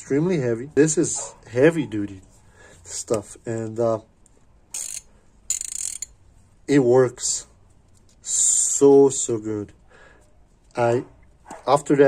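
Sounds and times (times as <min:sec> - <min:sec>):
ratchet clicking: 0:04.7 - 0:06.2.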